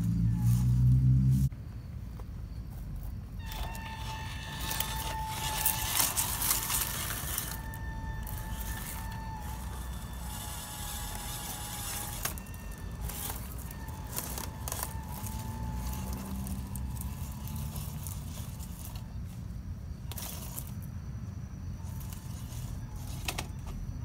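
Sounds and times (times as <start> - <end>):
small electric motor whine: 0.0 - 1.5, 3.4 - 24.0
tyres crackling on stone: 2.9 - 19.4.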